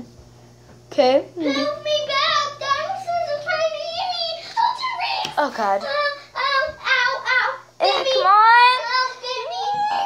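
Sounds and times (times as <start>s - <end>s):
girl singing wordlessly: 1.5s - 10.0s.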